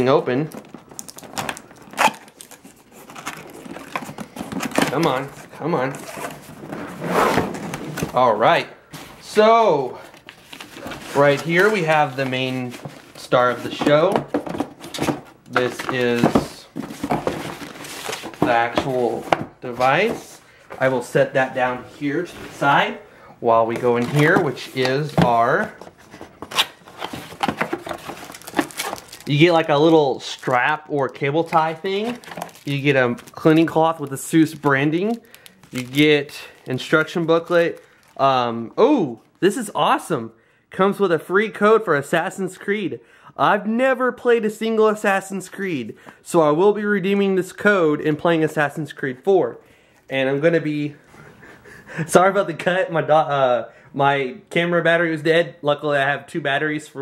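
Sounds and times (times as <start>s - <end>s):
packaging rustling and clicking: 0.5s - 8.2s, 10.0s - 20.2s, 23.7s - 38.2s.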